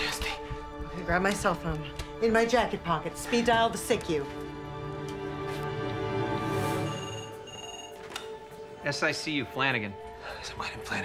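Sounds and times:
low sustained music: 0:00.0 - 0:11.0
telephone ringing: 0:06.8 - 0:08.4.

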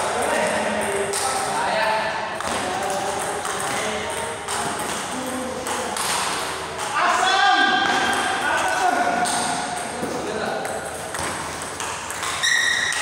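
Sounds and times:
table tennis ball clicking: 0:08.0 - 0:13.0.

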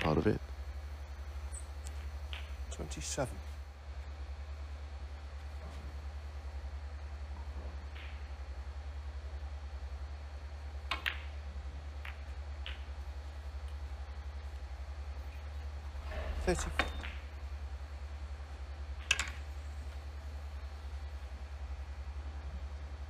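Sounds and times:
steady low hum: 0:00.0 - 0:23.0
snooker balls clacking: 0:10.9 - 0:11.4, 0:12.0 - 0:13.8, 0:16.1 - 0:17.4.

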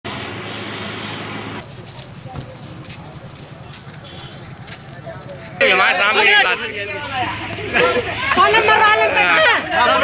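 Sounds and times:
motor vehicle running: 0:00.1 - 0:09.1
crowd voices: 0:01.6 - 0:10.0.

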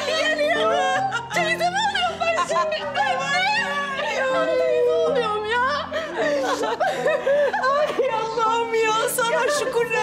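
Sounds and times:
background music with sustained notes: 0:00.0 - 0:10.0.

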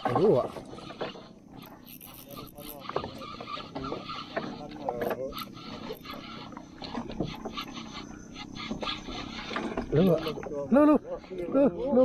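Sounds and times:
fishing reel cranking: 0:00.0 - 0:12.0.

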